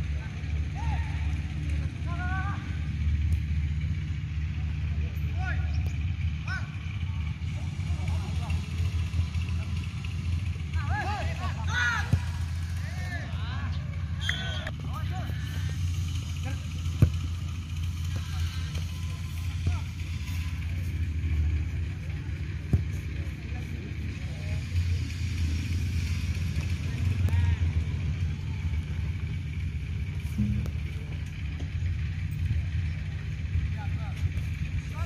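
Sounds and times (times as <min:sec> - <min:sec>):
distant voices and shouts: 0:00.0 - 0:35.0
low steady rumble: 0:00.0 - 0:35.0.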